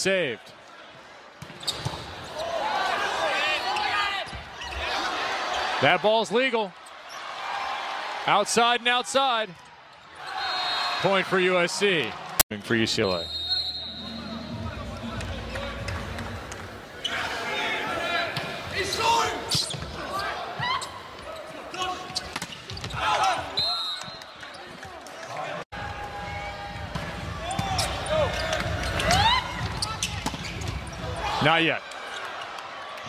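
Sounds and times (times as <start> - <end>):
shoes squeaking on court: 1.4 - 2.4, 20.6 - 23.2, 27.4 - 31.2
high whistle: 10.3 - 11.0, 13.0 - 15.0, 23.6 - 24.3
crowd voices: 12.3 - 22.1.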